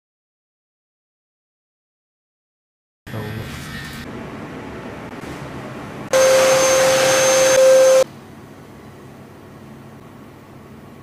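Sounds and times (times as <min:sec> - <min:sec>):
electric clippers buzzing: 0:06.2 - 0:08.0.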